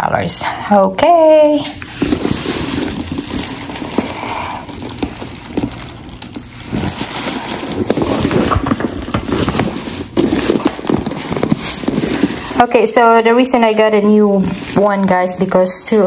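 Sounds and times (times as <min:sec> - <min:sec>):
plastic bag rustling and crinkling: 0:01.8 - 0:15.9.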